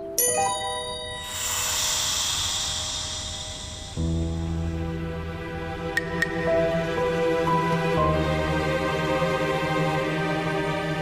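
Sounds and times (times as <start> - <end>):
breathy hiss through tube: 1.3 - 4.4.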